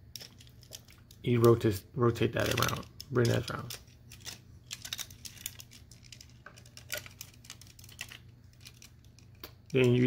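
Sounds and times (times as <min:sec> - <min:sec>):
plastic toy parts clicking: 0:02.4 - 0:10.0.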